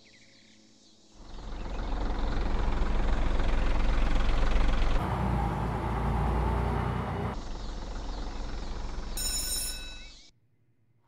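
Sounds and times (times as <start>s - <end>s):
school bus engine rumbling: 1.2s - 9.2s.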